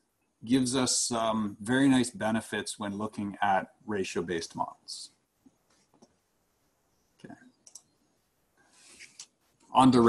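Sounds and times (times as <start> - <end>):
faint clicks: 7.2 - 8.0
quiet breath in: 8.6 - 9.2.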